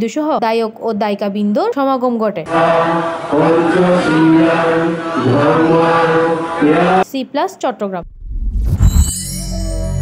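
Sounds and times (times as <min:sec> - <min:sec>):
group devotional chanting: 0:02.5 - 0:07.0.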